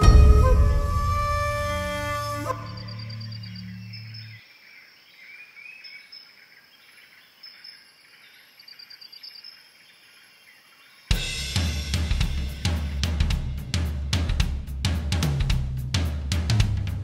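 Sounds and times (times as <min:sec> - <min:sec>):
soundtrack music: 0:00.0 - 0:02.8
birds chirping: 0:00.0 - 0:13.3.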